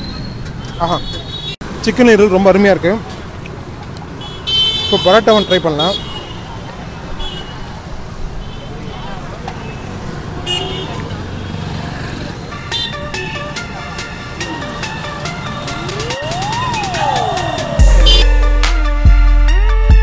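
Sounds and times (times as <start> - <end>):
road traffic passing: 0.0 - 19.0
sweeping tone rising and falling: 15.8 - 18.6
short horn toots: 17.8 - 18.7
background music with ticking beat: 17.8 - 20.0.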